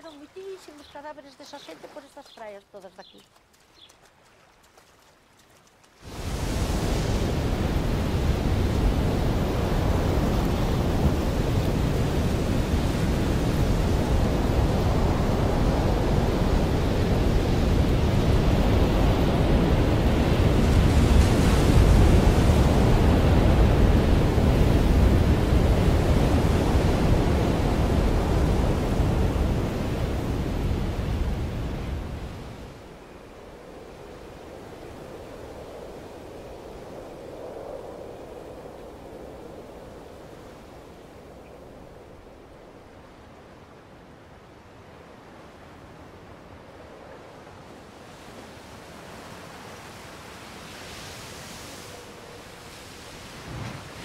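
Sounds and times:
rough sea: 0.0 - 3.1, 3.9 - 54.0
strong wind: 6.0 - 54.0.

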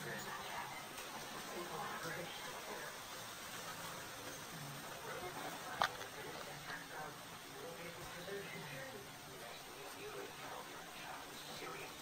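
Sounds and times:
faint low murmurs: 0.0 - 12.0
room noise hiss: 0.0 - 12.0.

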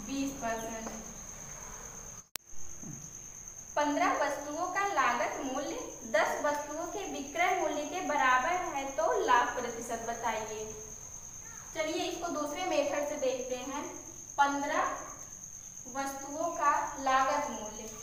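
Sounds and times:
woman speaking: 0.0 - 1.0, 3.8 - 10.8, 11.8 - 15.1, 15.9 - 18.0.

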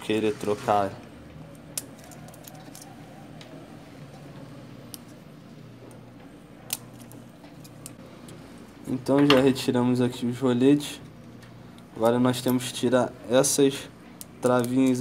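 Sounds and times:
low steady hum: 0.9 - 15.0.

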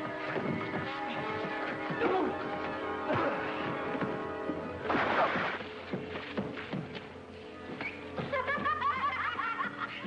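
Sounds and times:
film music with chirping high notes: 0.0 - 9.8.

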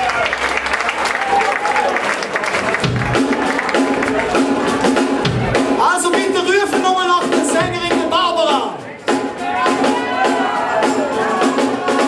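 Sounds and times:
rock band with singing: 2.7 - 12.0.

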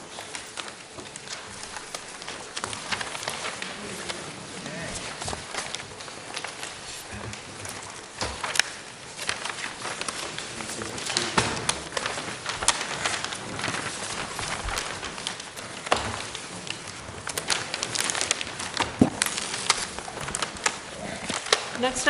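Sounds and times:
crackles: 0.0 - 22.0
paper shuffling and rustling: 0.0 - 22.0.

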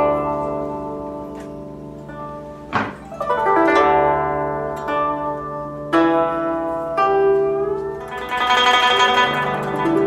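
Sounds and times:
strummed string instrument chords: 0.0 - 10.0.

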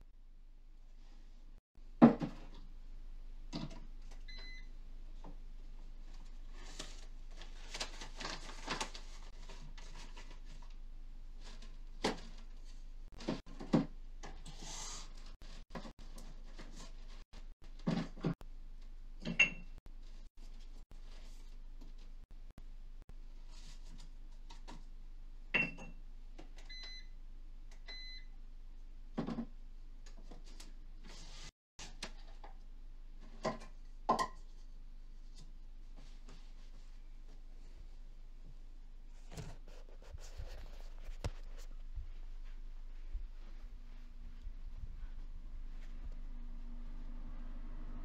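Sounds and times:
kitchen appliance beeps: 4.3 - 4.7, 19.4 - 19.7, 26.7 - 27.2, 27.8 - 28.3.

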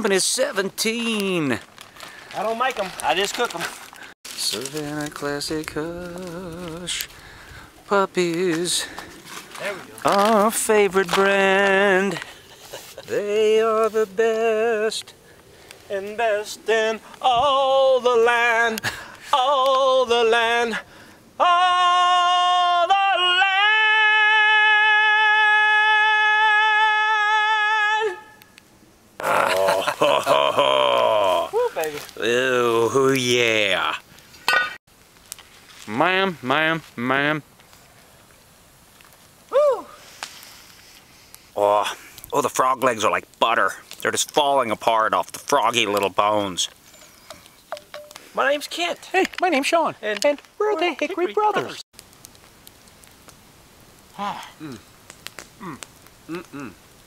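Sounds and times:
campfire crackling: 0.0 - 57.0
low steady hiss: 0.0 - 57.0
man singing a long note: 21.4 - 28.3.

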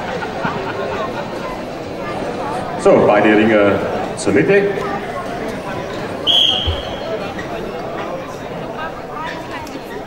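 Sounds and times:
crowd murmur: 0.0 - 10.0
referee's whistle blast: 6.2 - 7.1.

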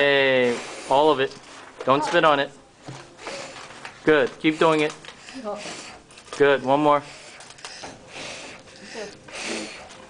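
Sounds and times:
boy blowing out candles: 8.1 - 9.9.

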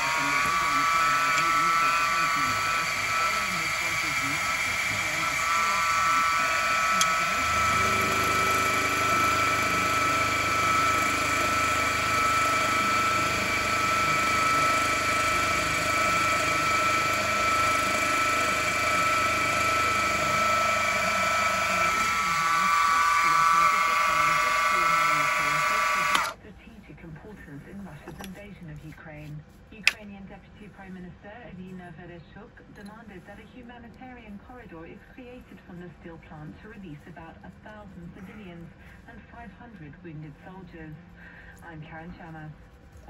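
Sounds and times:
milling machine spindle whine: 0.0 - 26.4.

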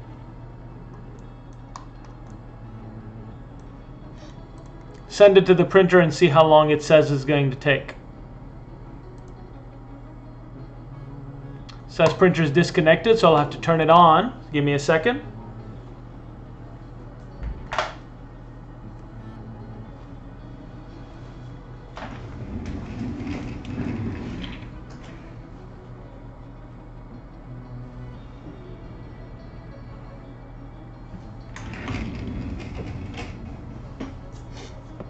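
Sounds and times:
low background music: 0.0 - 35.0
room hum: 0.0 - 35.0
chair creaking: 21.9 - 25.2, 31.5 - 35.0.

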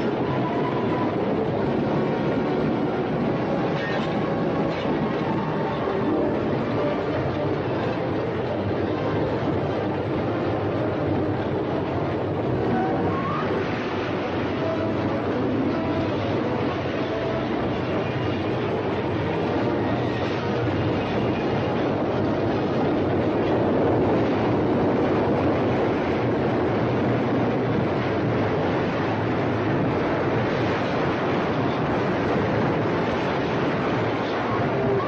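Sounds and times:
train rolling: 0.0 - 35.0.

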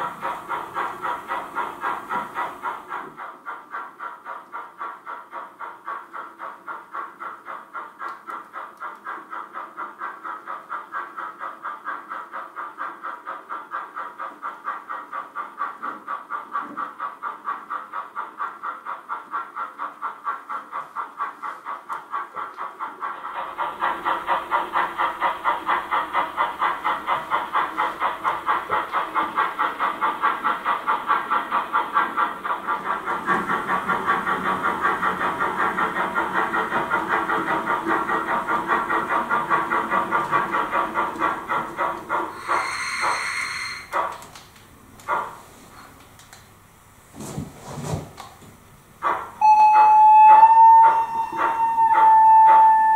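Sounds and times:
steam hiss: 0.0 - 44.4
model steam locomotive chuffing: 0.0 - 47.2, 48.2 - 52.9.

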